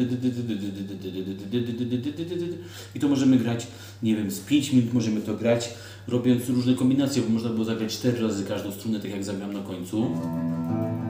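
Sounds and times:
electric guitar picked notes: 10.1 - 11.0.

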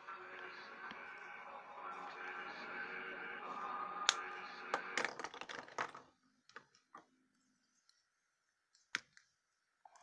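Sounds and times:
background music: 0.0 - 6.0.

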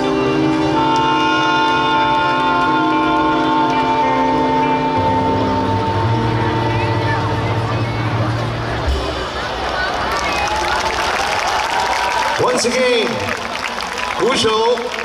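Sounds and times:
jazz band sustained chord: 0.0 - 9.6.

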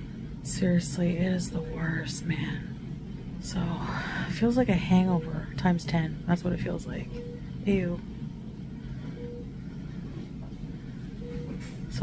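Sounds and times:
hospital room hum: 0.0 - 12.0.

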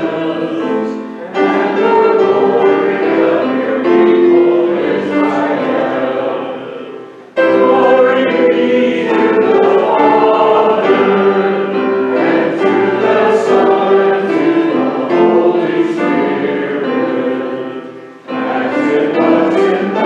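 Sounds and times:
choir singing held chords: 0.0 - 20.0.

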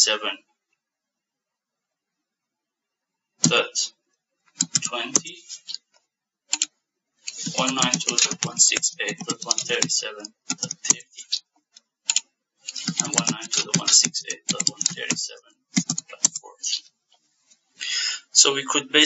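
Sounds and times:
key or mouse clicks: 4.6 - 5.3, 7.3 - 11.1, 12.1 - 15.2, 15.8 - 16.4
typing on keyboard: 4.6 - 5.3, 7.3 - 11.2, 12.1 - 16.5.

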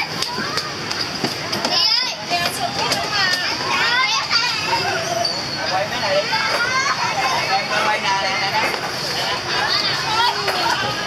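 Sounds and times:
children shouting and squealing: 0.0 - 11.0.

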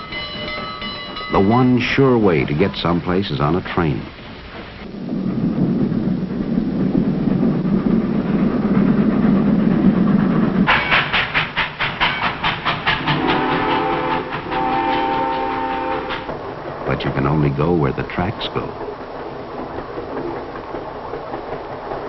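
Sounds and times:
rhythmic train clatter: 0.0 - 22.0
steam train rumble: 0.0 - 22.0
steam train whistle: 13.0 - 16.3.

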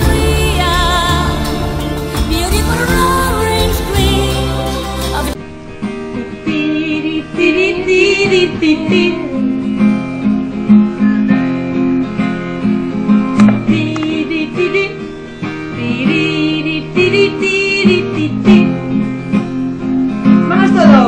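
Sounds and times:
song with guitar: 0.0 - 21.0.

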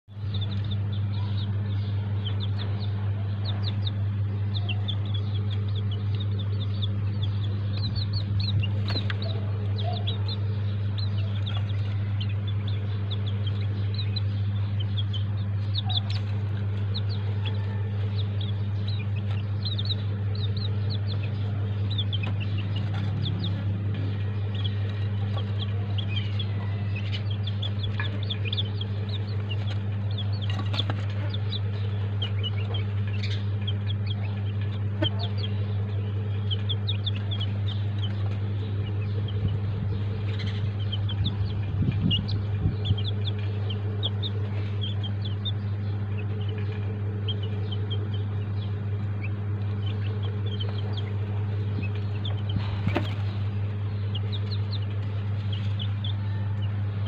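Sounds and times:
chicks peeping: 0.1 - 57.0
low steady hum: 0.1 - 57.0.

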